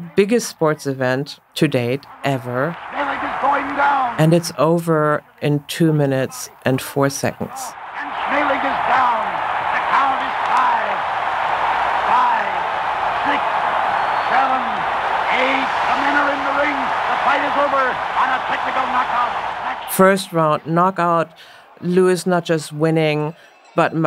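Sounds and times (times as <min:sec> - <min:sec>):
crowd cheering: 0:02.0 - 0:04.6, 0:07.3 - 0:24.0
man commentating excitedly: 0:02.8 - 0:04.2, 0:08.0 - 0:11.0, 0:14.2 - 0:20.0.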